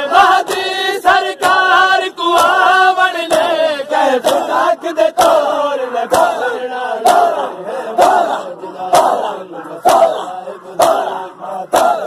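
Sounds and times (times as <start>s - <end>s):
men chanting a lament: 0.0s - 12.0s.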